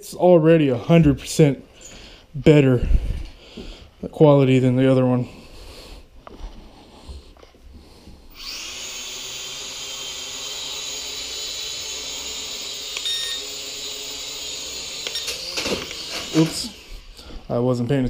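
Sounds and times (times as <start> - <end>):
drone motors whirring: 8.3 - 17.1.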